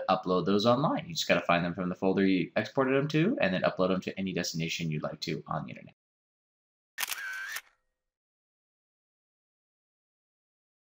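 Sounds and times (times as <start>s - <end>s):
camera shutter sound effect: 7.0s - 7.8s.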